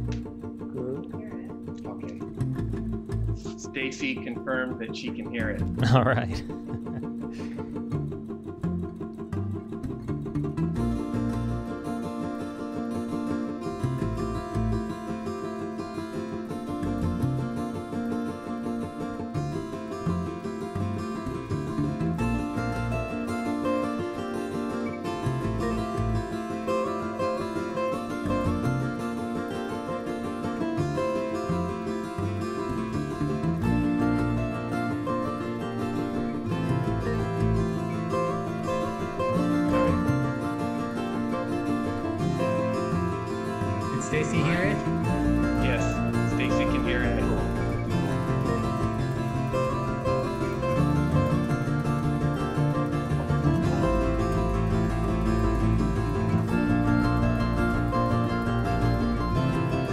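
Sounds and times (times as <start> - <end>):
plucked acoustic guitars: 0.0 - 59.9.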